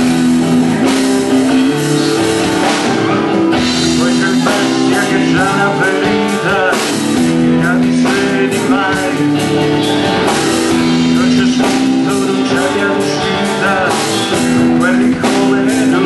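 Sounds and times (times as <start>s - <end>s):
drum kit: 0.0s - 16.0s
electric guitars: 0.0s - 16.0s
man singing: 0.0s - 16.0s.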